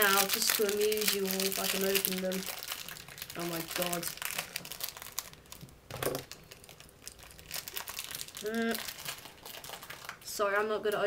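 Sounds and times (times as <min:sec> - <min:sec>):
sweet packet crinkling: 0:00.0 - 0:10.4.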